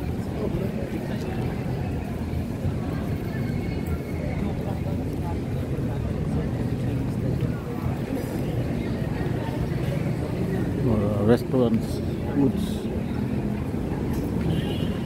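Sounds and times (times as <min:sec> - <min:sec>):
chatter of passers-by: 0:00.0 - 0:15.0
low street rumble: 0:00.0 - 0:15.0.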